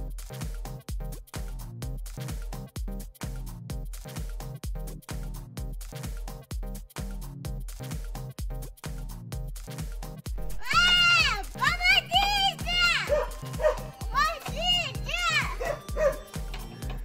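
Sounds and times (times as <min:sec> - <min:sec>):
background music with steady beat: 0:00.0 - 0:17.0
young children calling out: 0:10.4 - 0:16.3.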